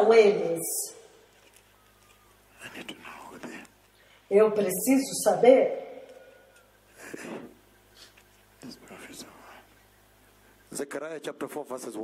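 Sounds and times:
person whispering softly: 2.5s - 3.8s, 8.6s - 9.8s.

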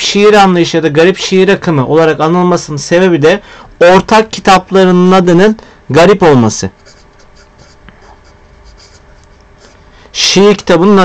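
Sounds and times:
marker writing on paper: 6.8s - 9.8s.

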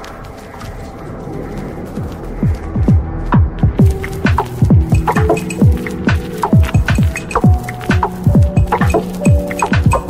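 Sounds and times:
deep kick drums: 2.4s - 10.0s
electronic clicks: 4.0s - 10.0s.

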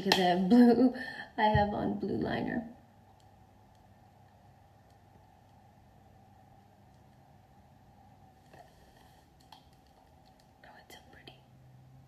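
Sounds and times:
faint low hum: 0.0s - 12.0s
woman whispering: 10.6s - 11.6s.

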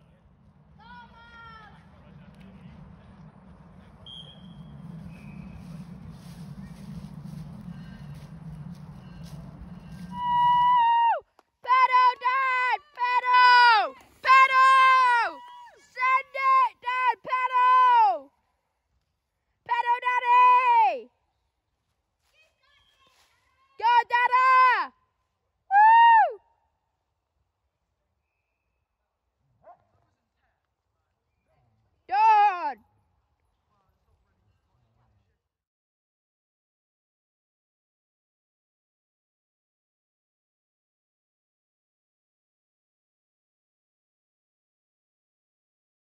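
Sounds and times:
faint outdoor background noise: 0.0s - 35.6s
faint distant call: 3.9s - 10.9s.

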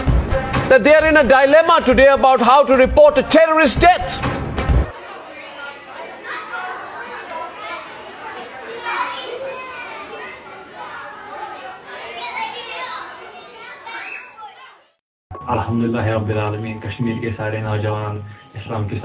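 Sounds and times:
children talking and calling out: 4.9s - 15.0s.

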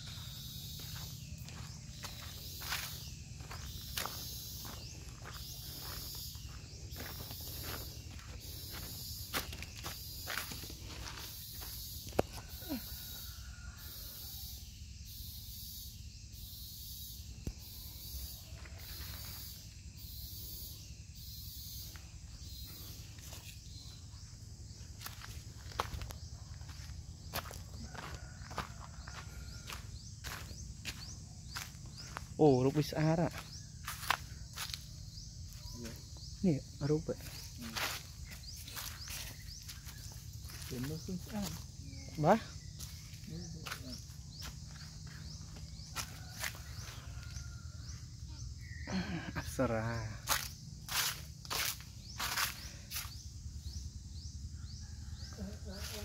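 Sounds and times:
footsteps on dry ground: 0.0s - 12.3s, 24.6s - 36.2s, 37.2s - 47.5s
high insect drone: 0.0s - 56.0s.

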